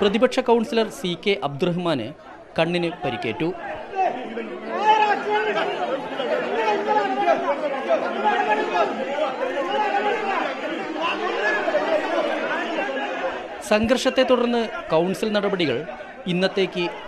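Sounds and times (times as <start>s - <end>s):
crowd talking and shouting: 0.0s - 17.0s.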